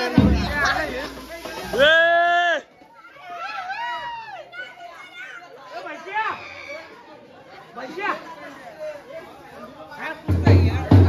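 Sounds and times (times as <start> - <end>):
people chattering and shouting: 0.0 - 11.0.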